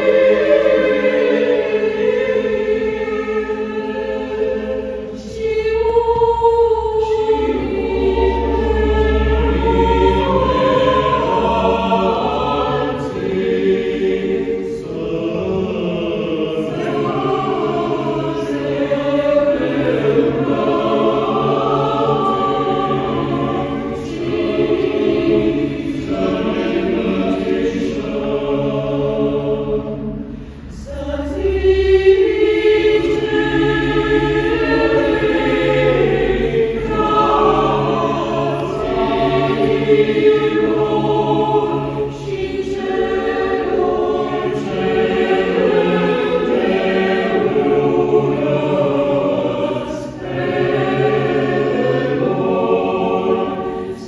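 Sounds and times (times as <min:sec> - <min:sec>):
mixed choir singing chords: 0:00.0 - 0:54.0.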